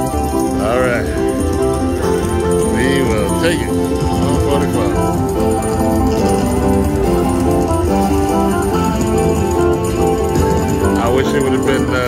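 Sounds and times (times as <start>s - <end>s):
jingling coin effects: 0.0s - 12.0s
slot machine win music: 0.0s - 12.0s.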